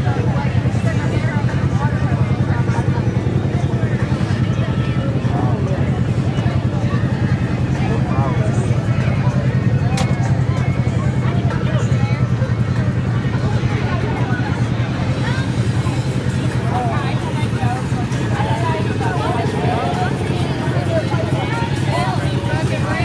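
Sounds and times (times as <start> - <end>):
people chattering: 0.0 - 23.0
vehicle engine idling: 0.0 - 23.0.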